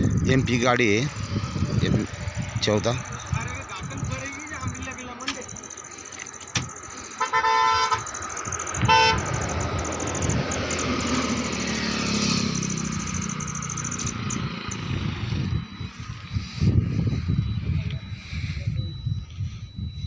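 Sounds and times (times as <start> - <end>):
truck engine and tyres rumbling: 0.0 - 20.0
vehicle horn tooting: 7.2 - 8.1, 8.8 - 9.4.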